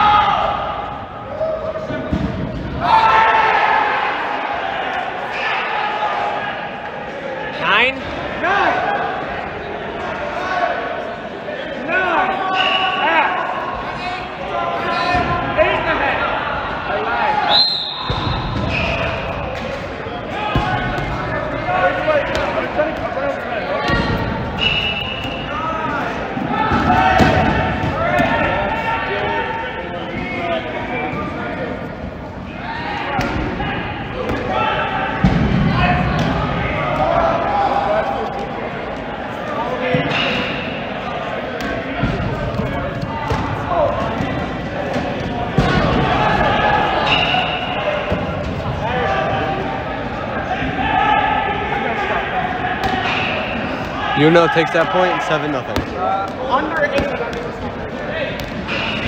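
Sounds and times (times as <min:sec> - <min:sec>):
players' voices and calls: 0:00.0 - 0:59.0.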